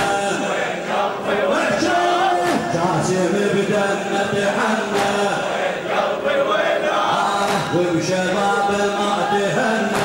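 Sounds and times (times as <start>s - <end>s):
crowd of men chanting: 0.0s - 10.0s.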